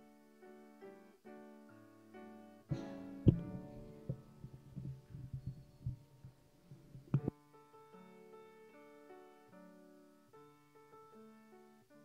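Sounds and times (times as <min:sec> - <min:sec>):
piano notes ringing: 0:00.0 - 0:12.0
soft low thumps: 0:02.7 - 0:07.3.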